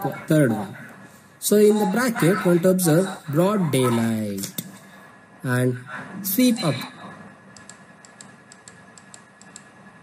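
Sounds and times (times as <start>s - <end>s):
quiet steady hum: 0.0s - 10.0s
light computer clicking: 7.5s - 9.8s.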